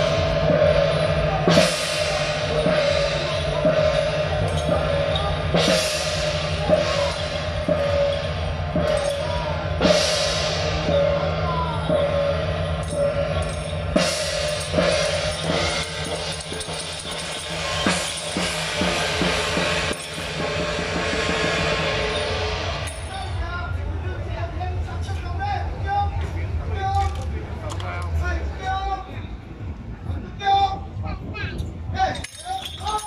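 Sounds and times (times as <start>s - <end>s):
hand cymbals crashing: 0.0s - 23.9s
drum beats: 0.0s - 33.0s.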